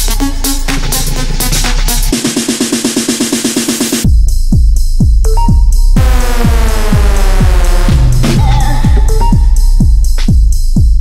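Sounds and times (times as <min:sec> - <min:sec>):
heavy kick drum: 0:00.0 - 0:11.0
minimal deep tech track: 0:04.0 - 0:11.0.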